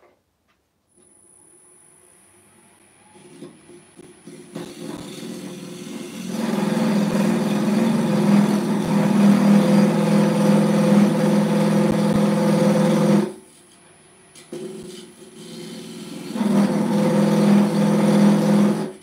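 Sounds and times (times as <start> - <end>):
lathe running hum: 4.0 - 13.4, 14.6 - 19.0
cutter buzzing into spinning wood: 4.4 - 13.4, 15.3 - 19.0.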